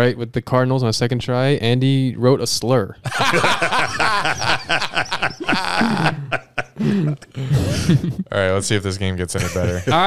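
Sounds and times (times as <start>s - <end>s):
men laughing: 3.1s - 8.3s, 9.4s - 10.0s.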